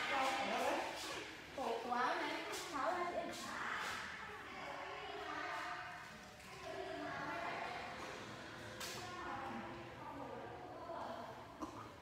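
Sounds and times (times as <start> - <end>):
woman talking: 0.0 - 5.8.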